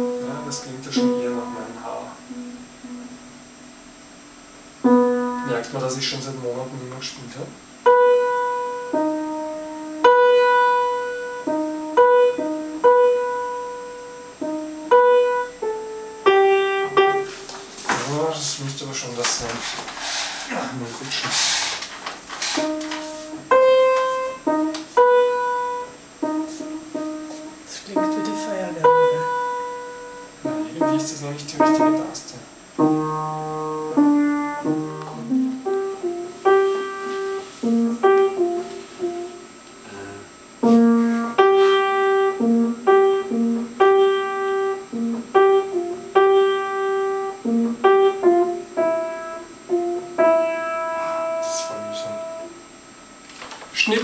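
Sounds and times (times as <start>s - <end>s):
upright piano melody over chords: 0.0s - 19.6s, 22.2s - 52.8s
man talking: 0.2s - 2.2s, 5.4s - 7.6s, 17.9s - 19.8s, 20.5s - 21.4s, 27.7s - 29.4s, 30.5s - 32.5s, 39.8s - 40.3s, 51.4s - 52.4s, 53.8s - 54.0s.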